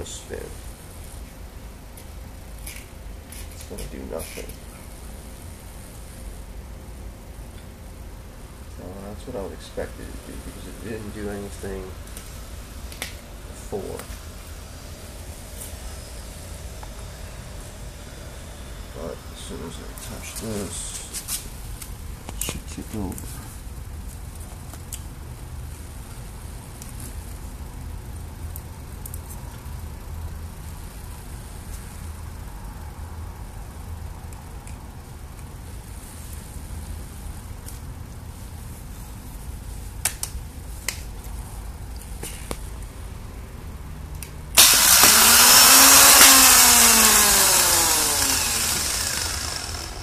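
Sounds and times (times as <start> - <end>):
starter motor clicks: 44.6 - 50.0
starter motor whining: 44.6 - 50.0.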